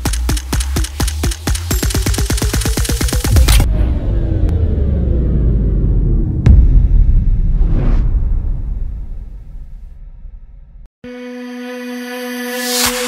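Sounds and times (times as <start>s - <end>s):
rapid sharp clicks: 0.0s - 3.6s
deep bass: 3.3s - 10.9s
low rumble with falling tones: 3.3s - 10.9s.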